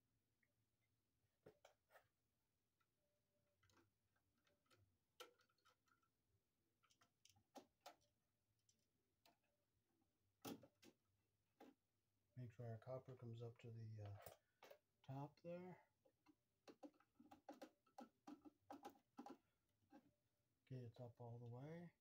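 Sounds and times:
tools clicking and tapping: 0:16.1 - 0:20.1.

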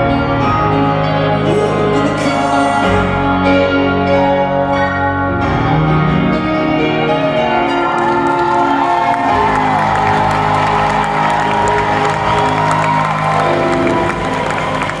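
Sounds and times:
piano chords: 0:00.0 - 0:15.0
crowd cheering and whooping: 0:07.3 - 0:15.0.

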